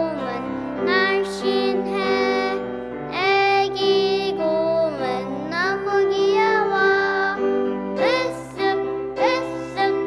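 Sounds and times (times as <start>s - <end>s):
child singing: 0.0s - 10.0s
instrumental accompaniment: 0.0s - 10.0s.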